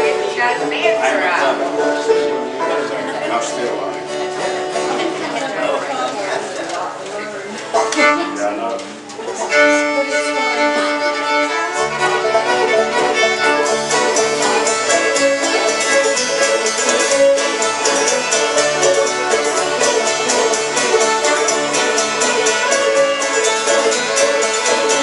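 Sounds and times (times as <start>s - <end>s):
fiddles playing a tune: 0.0s - 5.5s, 7.8s - 25.0s
banjo: 0.0s - 6.1s, 7.6s - 25.0s
guitar: 0.0s - 25.0s
upright bass: 11.7s - 25.0s.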